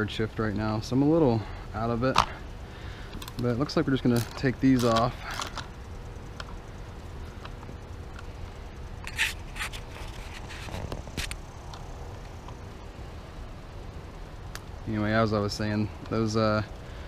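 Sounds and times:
low background rumble: 0:00.0 - 0:17.0
hand tool clicks and scrapes: 0:09.0 - 0:11.4.

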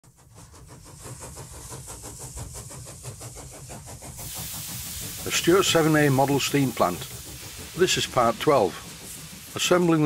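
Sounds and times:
steam engine exhaust beats: 0:00.0 - 0:10.0
steam hiss: 0:00.1 - 0:10.0.

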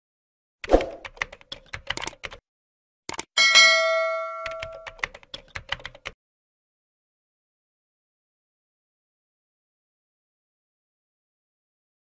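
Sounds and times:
keyboard typing clicks: 0:00.6 - 0:02.4, 0:03.1 - 0:03.4, 0:04.4 - 0:06.2
bell chime: 0:03.4 - 0:05.0.

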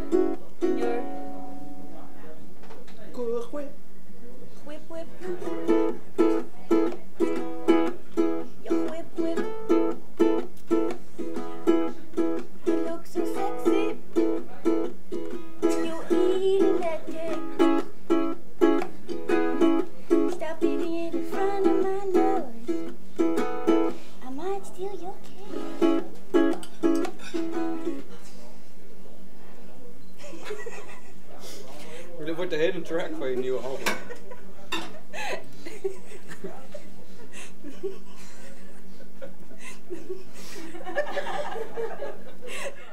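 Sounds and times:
ukulele strumming: 0:00.0 - 0:01.9, 0:05.1 - 0:24.1, 0:25.5 - 0:28.2
woman singing: 0:08.6 - 0:10.0, 0:12.7 - 0:14.0, 0:15.6 - 0:17.8, 0:20.2 - 0:22.9.

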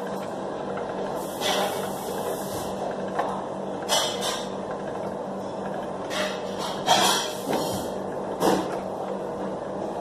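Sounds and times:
pasta machine whirring: 0:00.0 - 0:10.0
steady background hum: 0:00.0 - 0:10.0.

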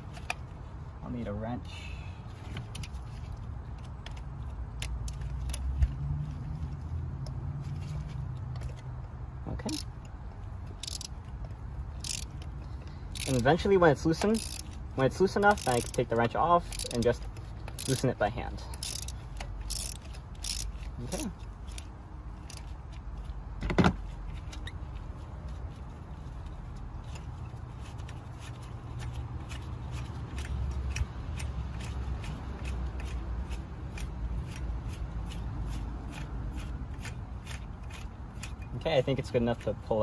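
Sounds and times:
ratchet wrench ticking: 0:04.0 - 0:05.8, 0:09.6 - 0:22.8.

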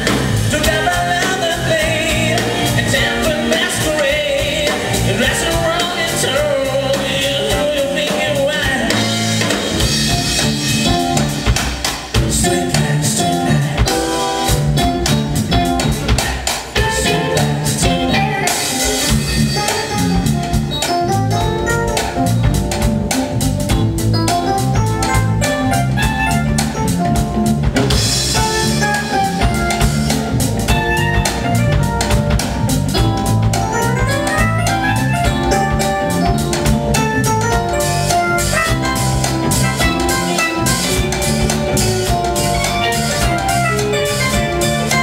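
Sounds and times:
drum kit steady beat: 0:00.0 - 0:45.0
smooth jazz band playing: 0:00.0 - 0:45.0.

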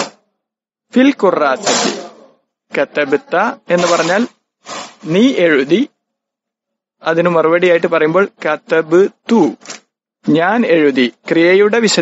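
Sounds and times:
man talking: 0:00.9 - 0:04.4, 0:07.0 - 0:09.6.

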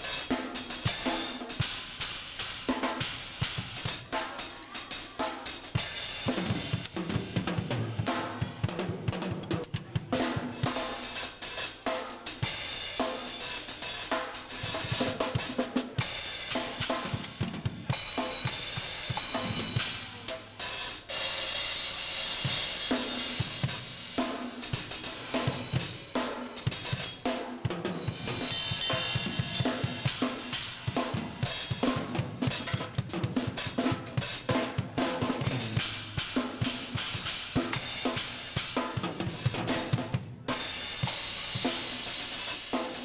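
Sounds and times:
drum kit solo: 0:00.0 - 0:43.0
cymbals ringing: 0:10.6 - 0:39.9.

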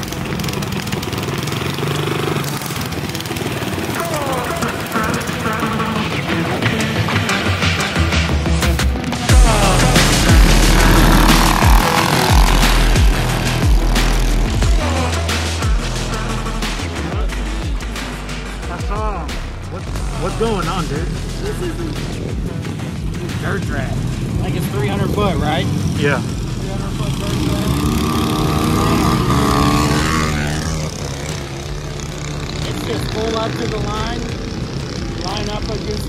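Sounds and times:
voices: 0:00.0 - 0:08.3, 0:09.0 - 0:36.0
background music: 0:00.0 - 0:36.0
small engines revving: 0:00.0 - 0:36.0.

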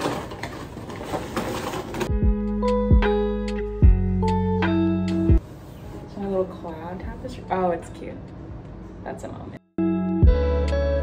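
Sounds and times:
cardboard rustling and tearing: 0:00.0 - 0:02.1.

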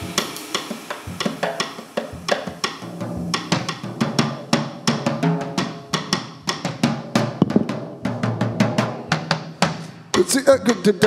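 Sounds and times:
drum kit playing: 0:00.0 - 0:11.0.

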